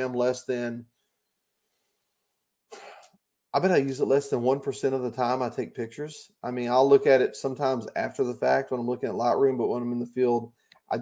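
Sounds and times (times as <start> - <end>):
man's breathy cough: 2.7 - 3.2.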